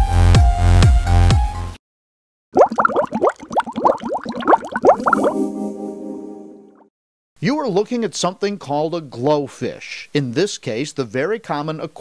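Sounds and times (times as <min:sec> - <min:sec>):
logo jingle with bubbly blips: 0:02.6 - 0:05.6.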